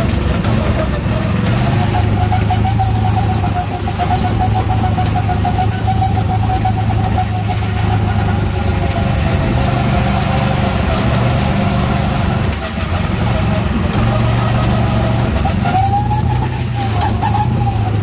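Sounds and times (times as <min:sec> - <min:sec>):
engine whine: 0:00.0 - 0:18.0
go-kart engine running: 0:00.0 - 0:18.0.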